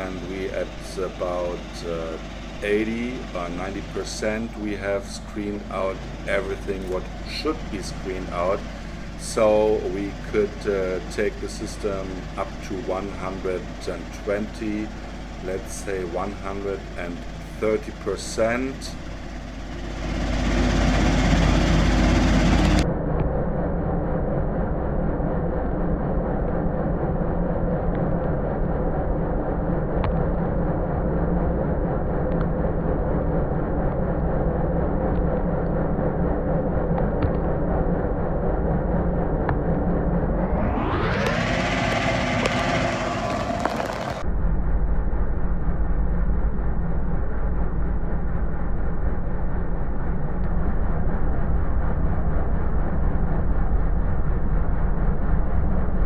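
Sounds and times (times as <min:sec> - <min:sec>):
engine revving: 0:00.0 - 0:22.8, 0:39.4 - 0:44.2
screening machine hum and rumble: 0:00.0 - 0:56.0.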